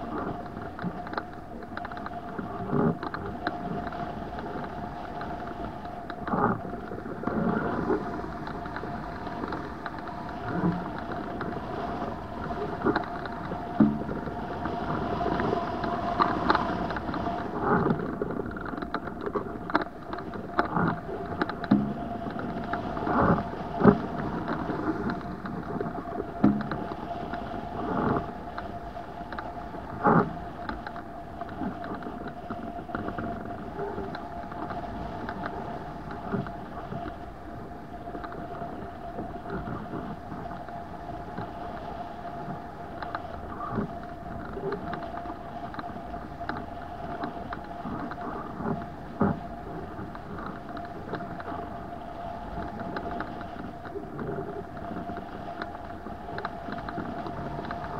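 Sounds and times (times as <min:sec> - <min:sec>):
rushing airflow over camera: 0:00.0 - 0:57.9.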